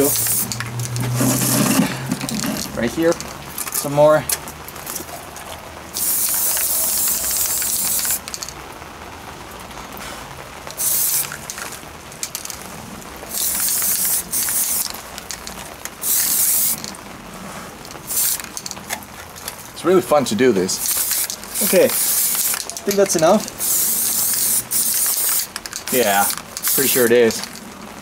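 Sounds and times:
spray paint can hissing: 0.0s - 2.8s, 5.9s - 8.5s, 10.7s - 12.6s, 13.3s - 17.0s, 18.0s - 18.9s, 20.7s - 27.6s.

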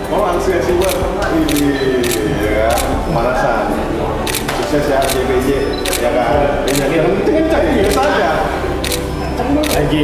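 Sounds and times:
men talking: 0.0s - 10.0s
sharp clicks: 4.3s - 6.0s, 6.7s - 6.9s, 8.8s - 9.9s.

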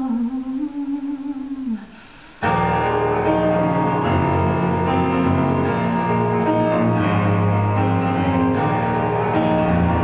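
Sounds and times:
woman singing wordless melody: 0.0s - 2.0s.

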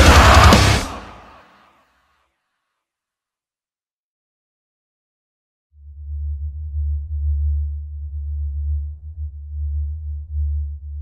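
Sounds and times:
deep bass drone: 5.8s - 11.0s.

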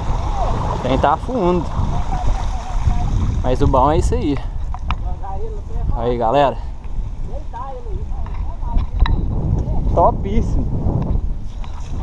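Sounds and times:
bike tyres rolling on muddy road: 0.0s - 9.5s, 11.2s - 12.0s
wind buffeting microphone: 0.0s - 12.0s.

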